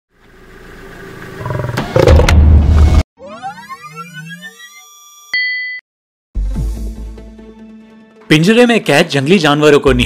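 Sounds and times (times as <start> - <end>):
lion growling: 1.4 - 2.3.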